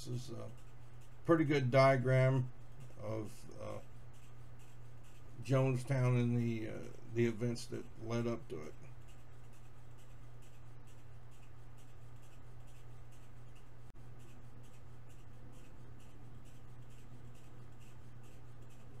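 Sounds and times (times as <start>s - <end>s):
scratchy rustling: 0.0s - 19.0s
steady low hum: 0.0s - 19.0s.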